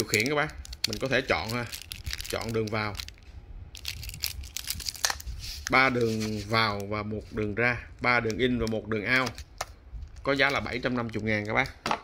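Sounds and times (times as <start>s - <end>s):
plastic wrap crinkling: 0.0s - 11.8s.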